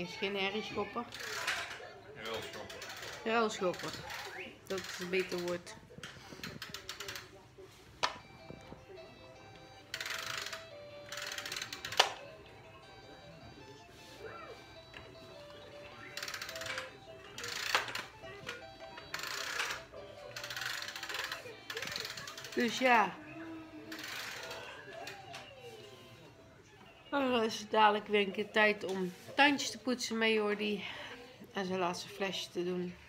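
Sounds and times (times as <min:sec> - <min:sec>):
toys rattling: 0:00.0 - 0:13.8, 0:14.5 - 0:28.0
faint electronic toy tune: 0:08.0 - 0:28.1.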